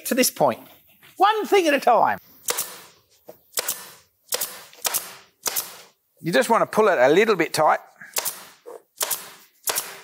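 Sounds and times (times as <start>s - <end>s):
staple gun firing: 3.5s - 5.8s, 8.2s - 10.0s.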